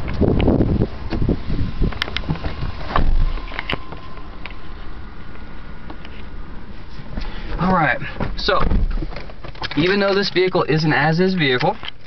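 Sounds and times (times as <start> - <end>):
rustling and bumps: 0.0 - 5.0, 5.9 - 10.4
wind buffeting microphone: 0.0 - 9.6.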